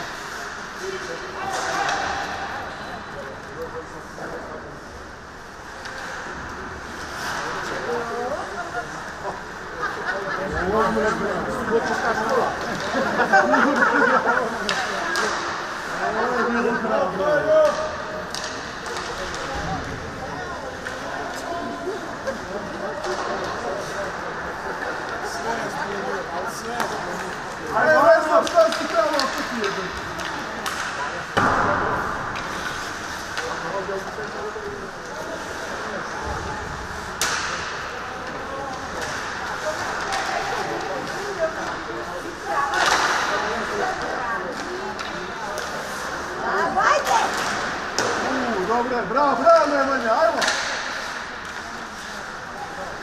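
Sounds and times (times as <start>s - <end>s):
hockey sticks clacking on puck: 0.0s - 10.0s, 11.1s - 46.4s, 47.0s - 53.0s.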